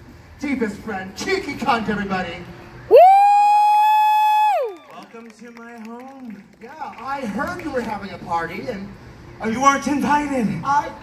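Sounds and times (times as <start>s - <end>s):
person whooping: 2.9s - 4.9s.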